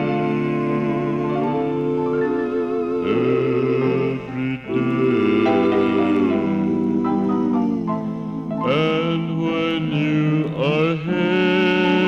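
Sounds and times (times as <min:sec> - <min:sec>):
man singing gospel: 0:00.0 - 0:02.4, 0:03.0 - 0:12.0.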